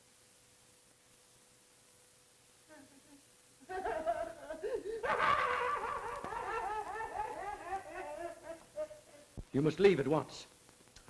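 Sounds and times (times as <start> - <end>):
man giggling high-pitched: 2.7 - 9.3.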